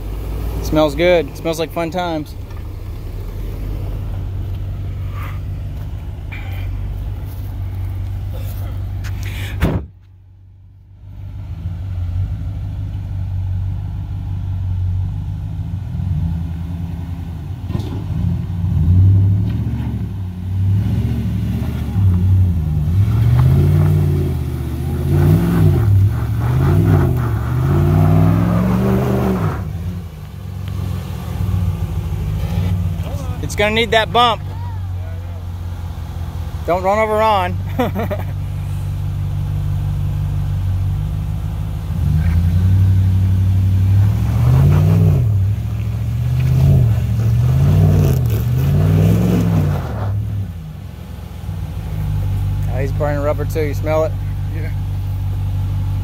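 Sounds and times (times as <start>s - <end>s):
truck engine revving: 0.0s - 9.7s, 11.4s - 56.0s
engine running at low revs: 0.0s - 56.0s.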